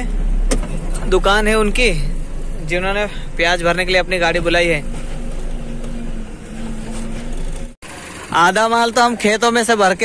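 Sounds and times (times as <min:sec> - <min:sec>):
diesel truck engine rumbling: 0:00.0 - 0:10.0.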